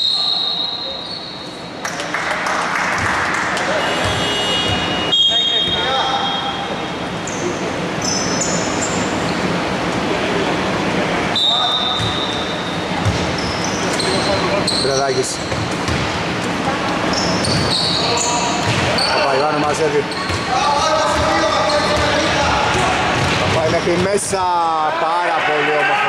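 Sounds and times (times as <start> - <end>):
shoe squeaks: 0.0 - 1.7, 3.8 - 9.4, 11.4 - 15.9, 17.0 - 22.3
players' voices: 1.8 - 26.0
ball bouncing on wooden court: 13.0 - 13.4, 15.5 - 16.2, 18.6 - 19.1, 20.1 - 20.5, 21.1 - 24.2.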